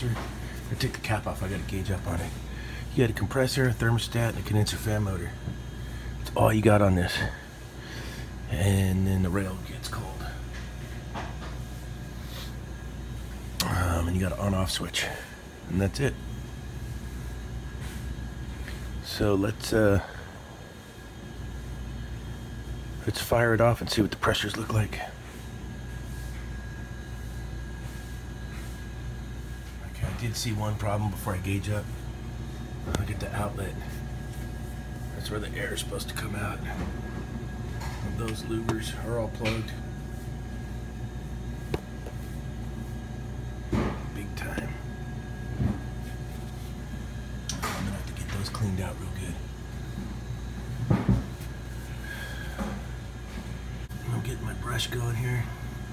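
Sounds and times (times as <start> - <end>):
low machinery hum: 0.0 - 55.9.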